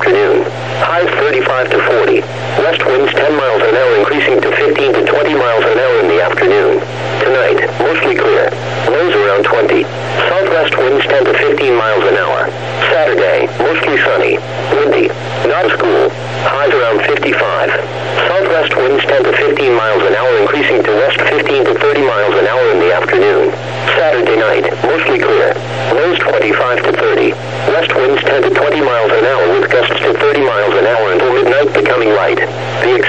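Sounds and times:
steady low hum: 0.0s - 33.0s
synthesized voice over radio: 0.0s - 33.0s.

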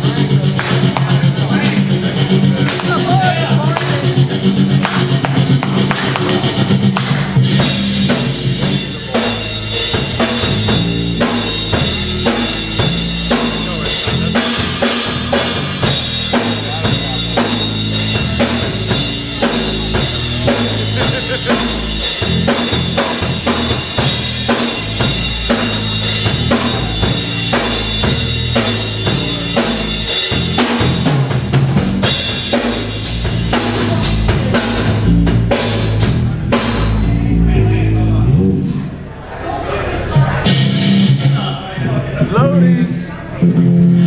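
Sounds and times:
drums and cymbals: 0.0s - 37.6s, 40.0s - 41.7s
heavy metal band playing live: 0.0s - 38.4s, 40.1s - 42.6s.

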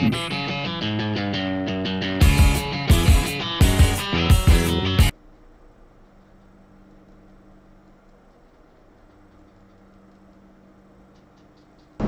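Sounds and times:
faint low hum with hiss: 5.1s - 12.0s.

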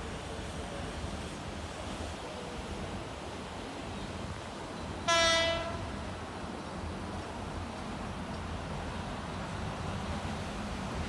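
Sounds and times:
electric train horn blast: 5.0s - 5.9s.

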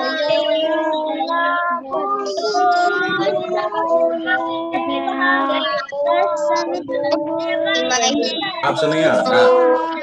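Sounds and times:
children and woman singing prayer: 0.0s - 10.0s.

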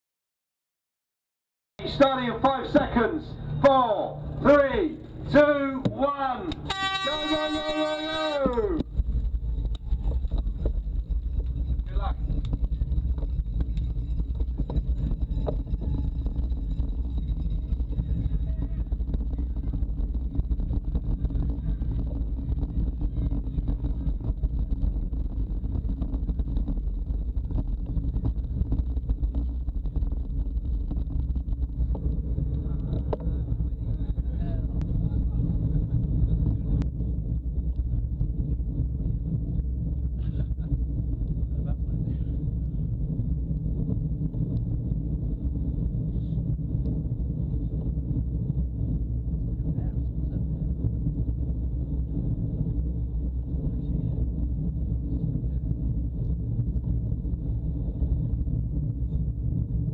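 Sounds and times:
bike rolling along: 1.8s - 59.9s
wind rumbling on microphone: 1.8s - 59.9s.

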